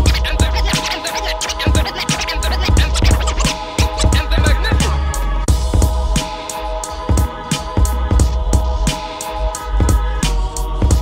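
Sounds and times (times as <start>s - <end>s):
vinyl record scratching: 0.0s - 5.5s, 7.2s - 11.0s
hip-hop beat with bass: 0.0s - 11.0s.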